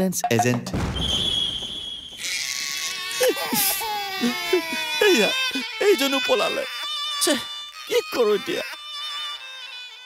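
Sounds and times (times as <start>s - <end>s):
man wailing and crying: 2.3s - 9.9s.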